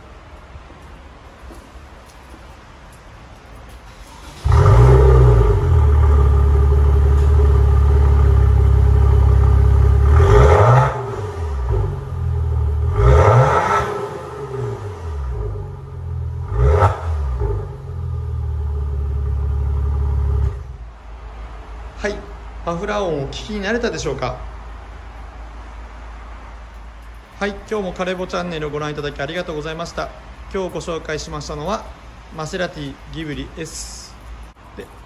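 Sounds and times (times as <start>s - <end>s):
car engine idling and revving: 3.9s - 20.9s.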